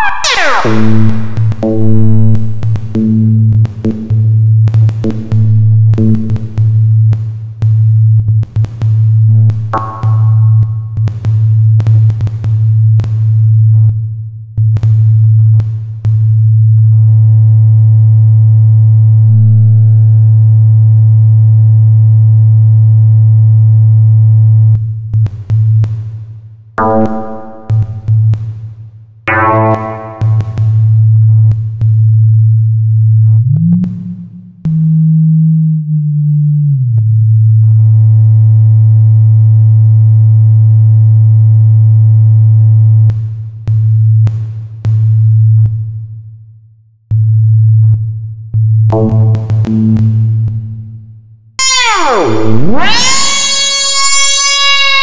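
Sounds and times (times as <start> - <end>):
faint buzzy overtones: 0.0 - 3.2, 29.3 - 30.6
low synthesizer tone: 0.0 - 4.4, 9.3 - 11.1, 26.8 - 28.3, 29.3 - 31.0, 48.9 - 55.0
drum machine hits: 9.8 - 10.8, 26.8 - 28.0, 29.3 - 30.7, 49.0 - 50.4
higher sustained synth tone: 29.3 - 30.6.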